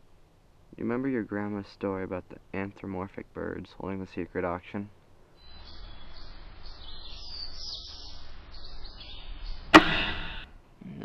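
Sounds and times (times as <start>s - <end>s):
birds chirping: 0.8s - 10.6s
sharp loud knock: 9.7s - 10.5s.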